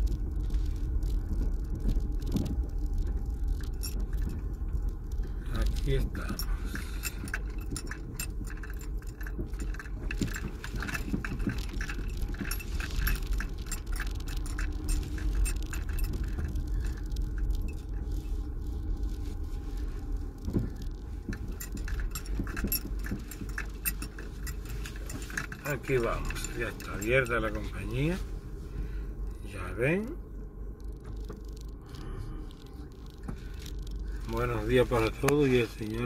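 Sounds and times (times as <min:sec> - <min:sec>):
car rumbling on rough road: 0:00.0 - 0:36.0
loose objects jingling and rattling: 0:03.4 - 0:18.5, 0:20.5 - 0:28.4, 0:32.9 - 0:36.0.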